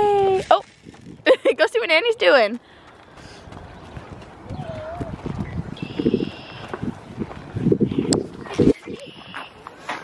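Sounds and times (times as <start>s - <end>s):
footsteps on wood chips: 2.4s - 7.7s.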